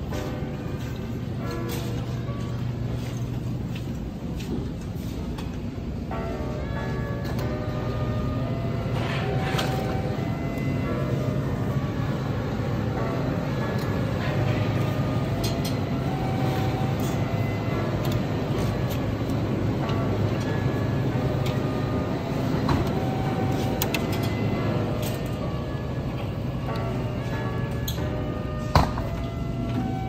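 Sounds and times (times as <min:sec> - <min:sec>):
faint music: 0:00.0 - 0:30.0
refrigerated cooler humming: 0:05.7 - 0:30.0.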